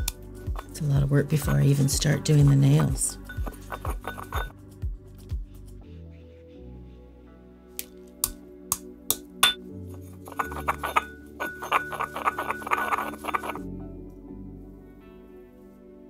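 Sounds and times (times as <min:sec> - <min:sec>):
pestle grinding chalk: 0:00.0 - 0:02.5, 0:03.2 - 0:04.5, 0:10.0 - 0:13.6
background music: 0:00.0 - 0:16.0.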